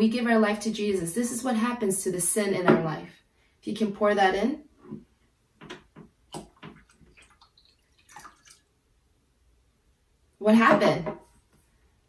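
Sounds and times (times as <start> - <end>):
water pouring into beaker: 6.3 - 8.8.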